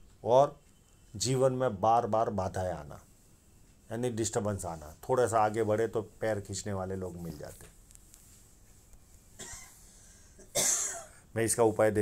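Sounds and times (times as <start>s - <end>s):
person coughing: 9.4s - 11.2s
faint breath: 9.8s - 10.4s.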